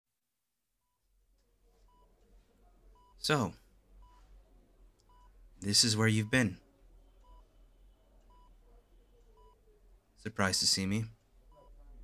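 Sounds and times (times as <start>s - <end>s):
patient monitor beeps: 1.8s - 2.1s, 2.9s - 4.3s, 5.1s - 9.7s, 11.5s - 11.8s.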